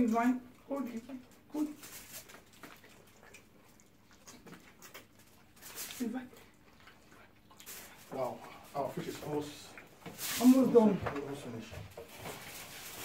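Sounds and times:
person speaking: 0.0 - 1.8, 8.1 - 11.8
foil tray rustle: 10.1 - 13.0.

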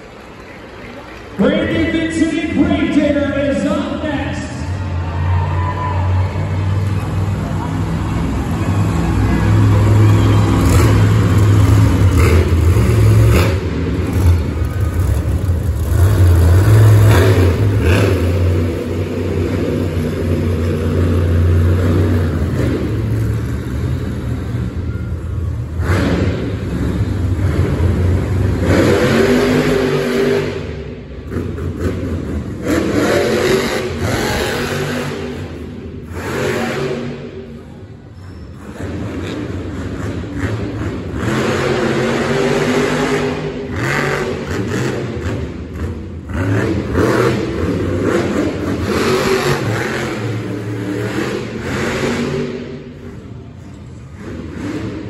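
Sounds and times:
monster truck engine revving: 0.0 - 55.0.

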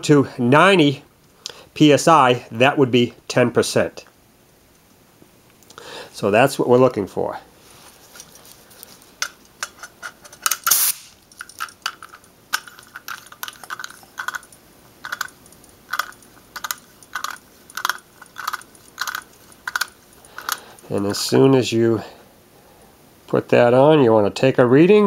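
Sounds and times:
air hose coupler snapping: 9.2 - 14.4
short hiss of air: 10.6 - 11.2.

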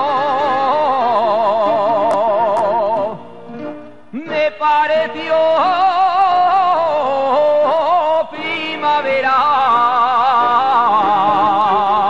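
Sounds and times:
solo voice singing with vibrato: 0.0 - 3.2, 4.1 - 12.0.

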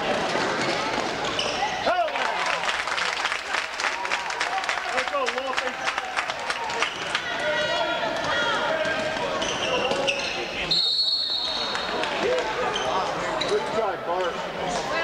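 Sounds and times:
referee's whistle blast: 10.7 - 11.8.

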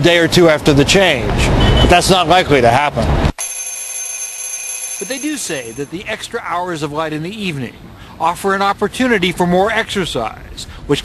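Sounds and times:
alarm clock ringing: 3.4 - 5.9.

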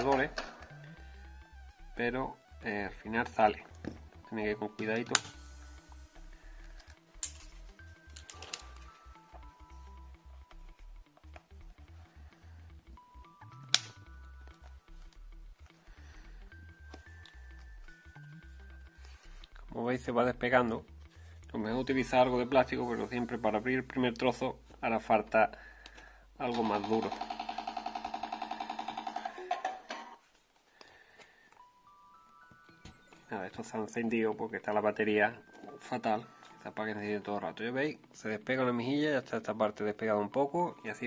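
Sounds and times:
plastic clip snapping: 13.7 - 14.0.

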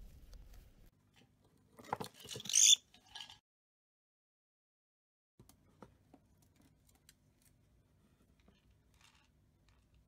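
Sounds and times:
bird chirping: 2.5 - 2.8.

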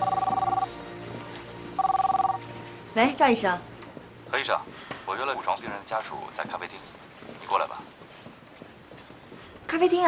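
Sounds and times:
mobile phone two-tone ring: 0.0 - 0.7, 1.8 - 2.4
soft background music: 0.0 - 8.5.

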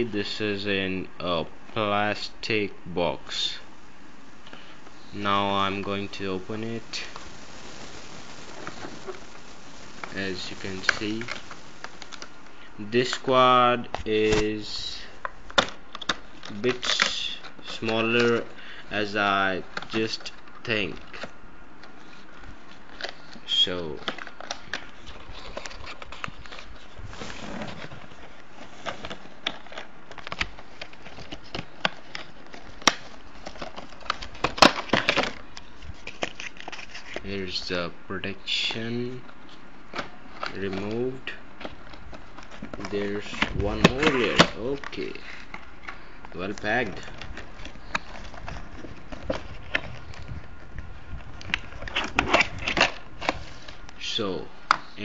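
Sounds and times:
packaging clicking and crinkling: 4.4 - 13.2, 19.6 - 37.3, 38.7 - 54.0
plastic snapping and rustling: 15.2 - 18.4, 19.7 - 37.3, 39.2 - 54.0.

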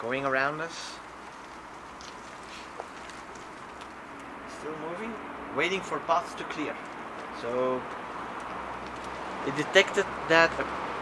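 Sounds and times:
outdoor background noise: 0.0 - 11.0
tyres rolling on asphalt: 0.0 - 11.0.

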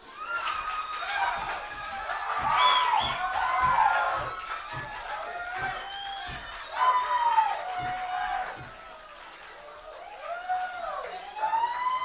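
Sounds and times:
rhythm section thumps: 1.1 - 8.9.

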